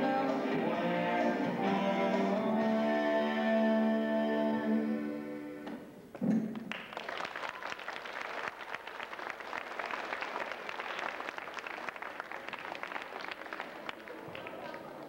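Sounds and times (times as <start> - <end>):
audience applauding: 6.5 - 15.0.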